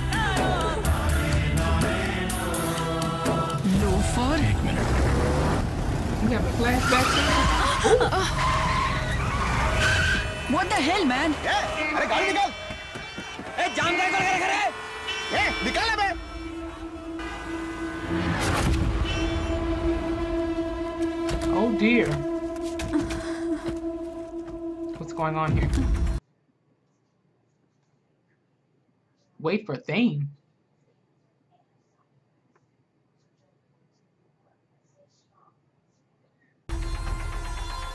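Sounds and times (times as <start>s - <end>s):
loud film soundtrack: 0.0s - 26.2s, 36.7s - 37.9s
tyres skidding: 3.8s - 23.2s.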